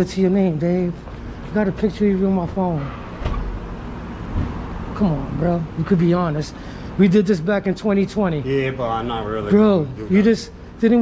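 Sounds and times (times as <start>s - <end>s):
city traffic rumble: 0.0s - 11.0s.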